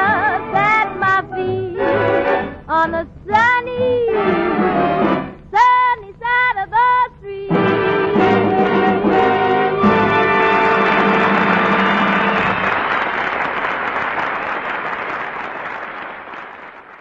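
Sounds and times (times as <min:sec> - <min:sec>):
big band with brass: 0:04.1 - 0:05.4, 0:07.5 - 0:12.8
audience applause: 0:10.4 - 0:17.0.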